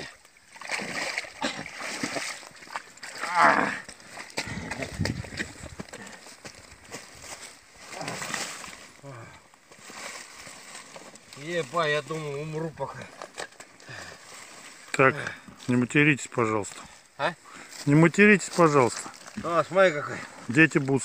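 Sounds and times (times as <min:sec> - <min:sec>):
splashing through shallow water: 0:00.0 - 0:09.1.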